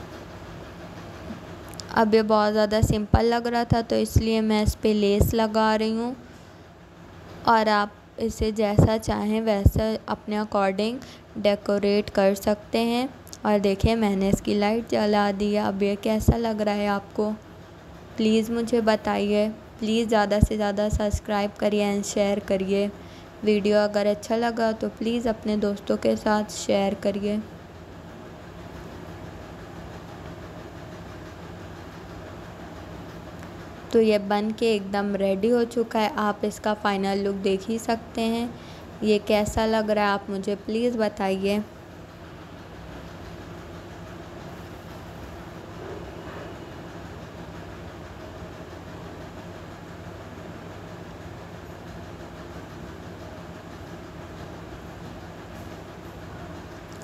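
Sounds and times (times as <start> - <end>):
low rumbling background noise: 0.0 - 57.0
steady low hum: 0.0 - 57.0.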